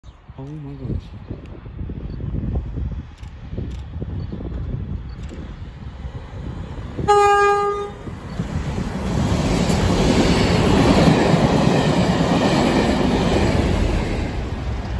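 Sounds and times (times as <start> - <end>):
train wheels rumbling on rails: 1.5 - 14.9
locomotive horn: 7.1 - 8.0.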